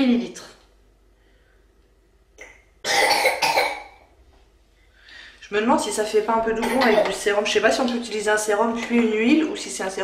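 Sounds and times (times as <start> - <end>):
woman coughing: 2.8 - 4.0, 6.6 - 7.2
intake of breath: 4.8 - 5.4.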